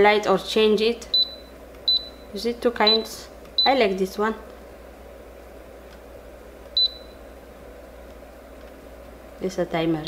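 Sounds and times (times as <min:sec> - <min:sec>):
air purifier fan humming: 0:00.0 - 0:10.0.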